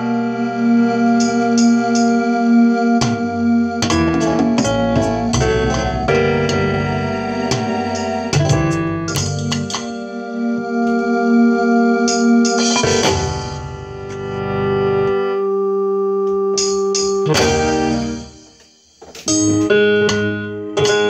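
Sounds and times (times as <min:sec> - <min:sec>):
keyboard music: 0:00.0 - 0:21.0.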